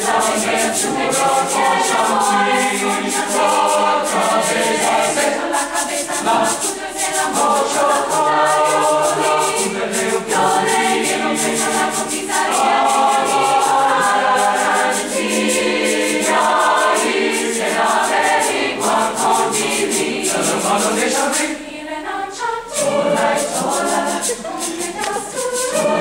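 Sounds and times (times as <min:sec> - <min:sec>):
sharp high ticks: 0:00.0 - 0:21.5
choir singing in parts: 0:00.0 - 0:26.0.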